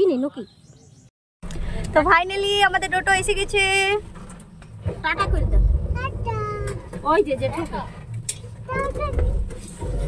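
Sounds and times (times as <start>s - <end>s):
rickshaw low rumble: 1.4s - 10.0s.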